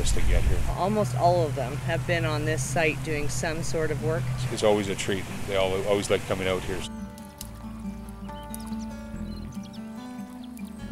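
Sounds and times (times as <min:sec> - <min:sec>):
low bass line: 0:00.0 - 0:10.9
background music with held notes: 0:00.8 - 0:10.9.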